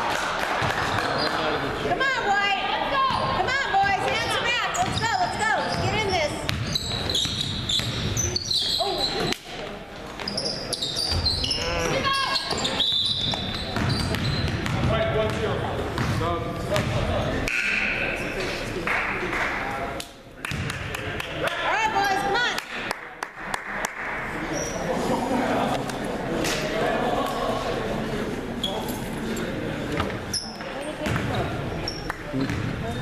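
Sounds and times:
sneakers squeaking: 0.7s - 1.7s, 3.0s - 18.8s, 24.5s - 25.1s, 28.6s - 33.0s
players calling out: 10.4s - 14.6s.

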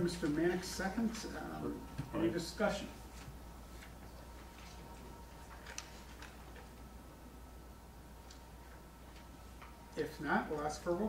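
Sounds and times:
steady low hum: 0.0s - 11.0s
papers rustling: 3.0s - 6.9s.

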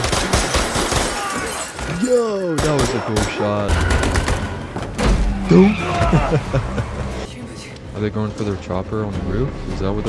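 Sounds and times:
rapid gunfire: 0.0s - 1.3s.

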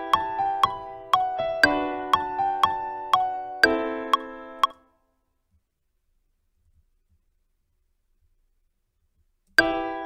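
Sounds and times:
metronome clicking: 0.0s - 4.8s.

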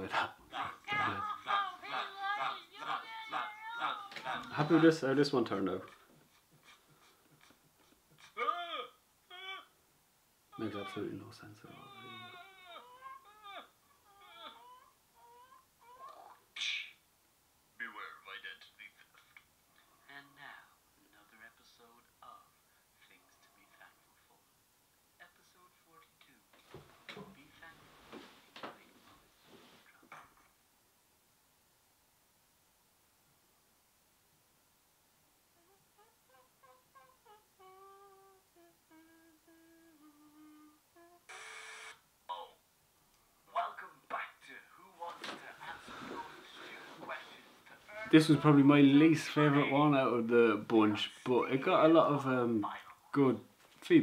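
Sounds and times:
woman crying: 0.5s - 5.0s, 5.9s - 9.8s, 10.6s - 11.1s, 11.7s - 16.3s, 47.9s - 48.7s
person humming a tune: 35.6s - 41.5s.

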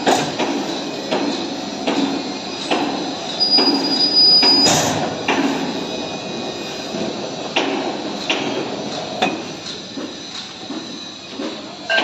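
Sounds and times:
high steady metal squeal: 3.3s - 5.0s.

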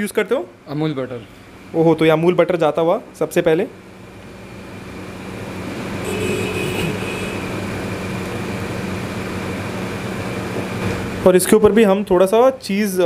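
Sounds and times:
mechanical rushing noise: 4.4s - 11.2s.

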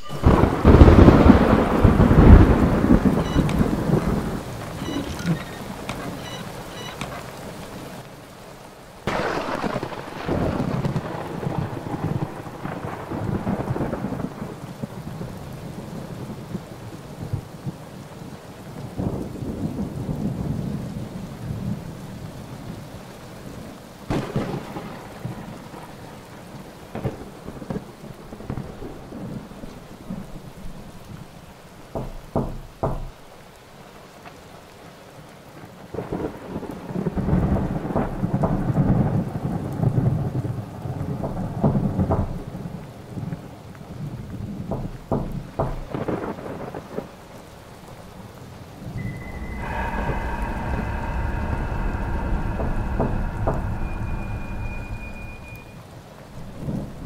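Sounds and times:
sharp thunder cracks: 0.0s - 7.0s, 9.0s - 16.6s, 24.1s - 29.5s, 35.9s - 42.8s, 48.8s - 55.8s
rolling thunder rumbles: 0.0s - 8.1s, 9.0s - 33.3s, 35.8s - 57.0s.

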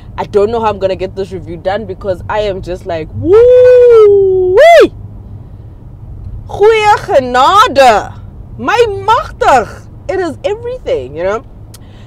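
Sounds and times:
low rumble in car cabin: 0.0s - 12.0s
woman shouting woo: 3.2s - 5.0s.

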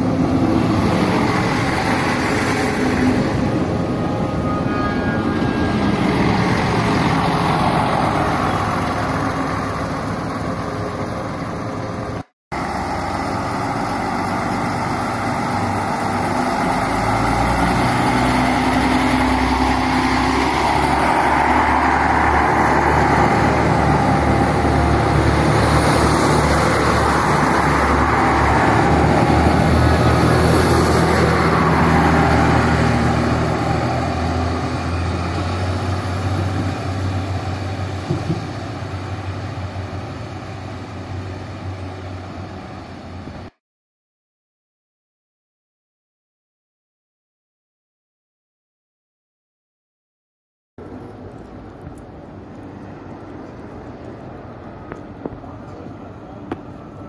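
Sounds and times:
train engines running: 0.0s - 43.5s
train passing: 0.0s - 43.5s.

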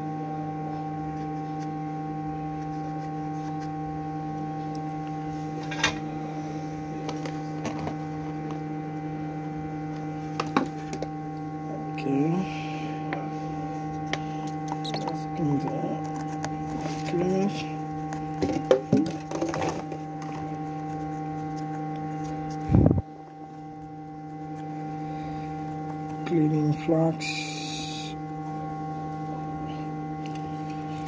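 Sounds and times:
electrical hum: 0.0s - 31.0s.

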